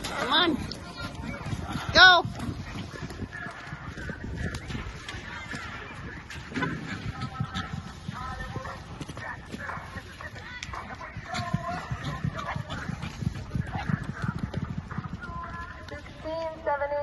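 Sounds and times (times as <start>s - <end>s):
horse hoofbeats on dirt: 0.0s - 17.0s.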